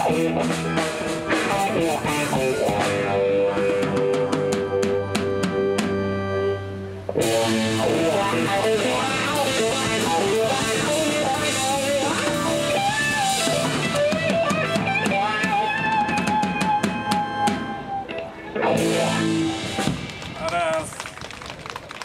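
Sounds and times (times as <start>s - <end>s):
blues band final chord: 0.0s - 20.2s
electric guitar bending notes: 0.0s - 20.4s.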